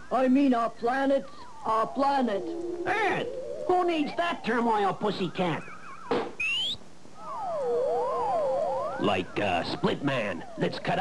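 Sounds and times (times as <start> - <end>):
wavering electronic tones: 0.0 - 11.0
rising electronic whistle: 1.2 - 11.0.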